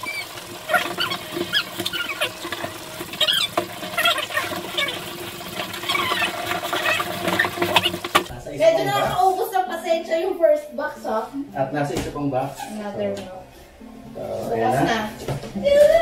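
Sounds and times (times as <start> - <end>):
sped-up squeaky voices: 0.0 - 8.0.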